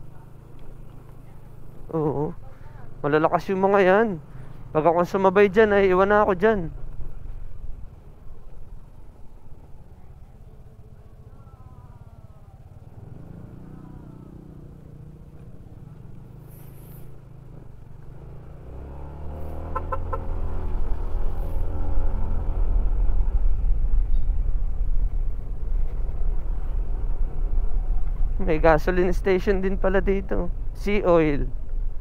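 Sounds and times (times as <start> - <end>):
scooter engine running: 0.0 - 3.0, 9.1 - 28.5
wind rumble: 2.9 - 10.7, 14.4 - 32.0.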